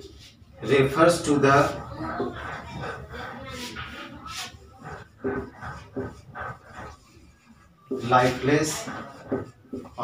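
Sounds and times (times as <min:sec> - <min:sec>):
marker squeaking on whiteboard: 0:00.1 - 0:10.0.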